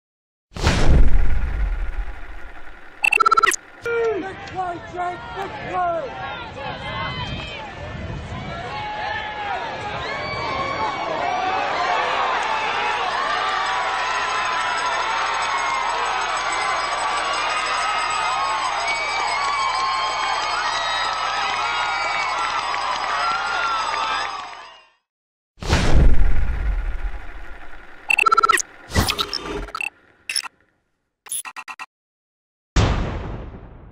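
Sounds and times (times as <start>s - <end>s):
low boom: 0.6s - 3.0s, 25.6s - 28.1s
rapid high electronic beeps: 1.0s - 3.9s, 26.1s - 30.5s, 31.3s - 31.9s.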